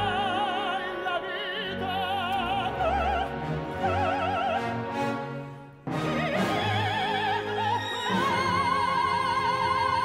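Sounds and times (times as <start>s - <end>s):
soprano singing opera: 0.0s - 5.0s, 5.9s - 10.0s
orchestra playing: 0.0s - 10.0s.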